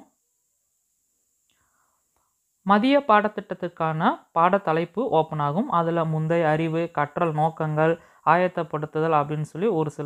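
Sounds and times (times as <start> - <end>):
faint breathy sound: 1.5 - 2.6, 8.0 - 8.3.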